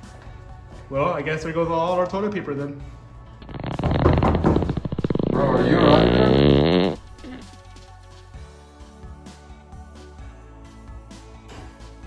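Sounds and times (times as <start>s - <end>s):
rasping fart sound effect: 3.4s - 7.6s.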